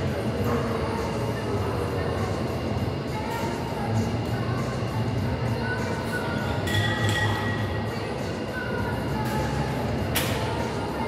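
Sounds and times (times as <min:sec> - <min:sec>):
faint voices: 0:00.0 - 0:11.0
low rumble of gym noise: 0:00.0 - 0:11.0.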